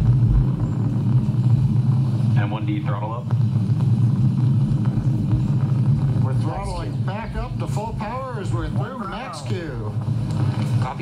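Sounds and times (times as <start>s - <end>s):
rough low rumble: 0.0s - 11.0s.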